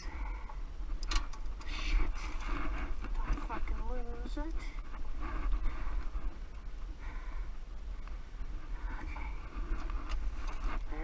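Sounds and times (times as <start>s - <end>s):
light metallic clicks of hitch pins: 0.5s - 1.8s.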